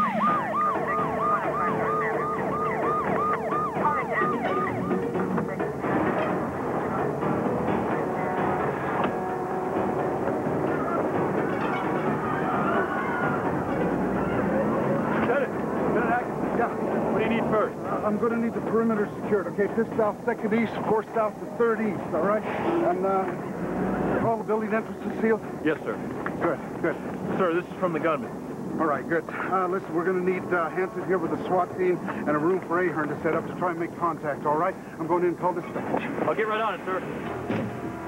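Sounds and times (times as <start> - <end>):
police siren yelping: 0.0 - 5.4, 10.7 - 15.2
noisy background rumble: 0.0 - 38.0.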